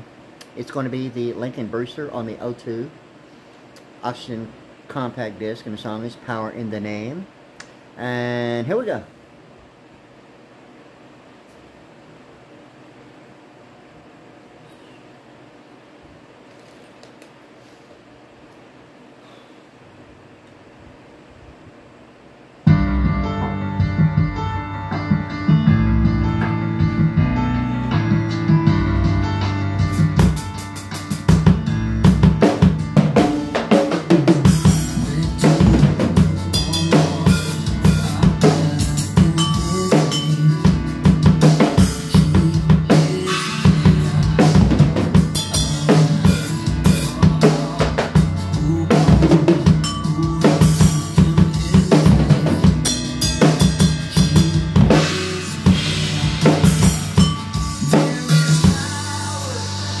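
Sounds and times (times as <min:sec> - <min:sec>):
acoustic drum kit playing: 0:22.7 - 1:00.0
recorded song: 0:22.7 - 1:00.0.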